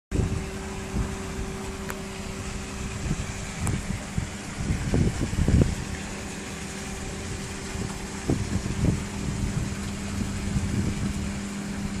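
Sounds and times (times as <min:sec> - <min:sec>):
mechanical hum: 0:00.1 - 0:12.0.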